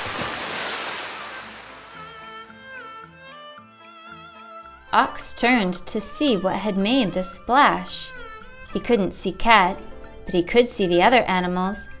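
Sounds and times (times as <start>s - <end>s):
big water splash: 0.0s - 2.0s
quiet background music: 0.2s - 12.0s.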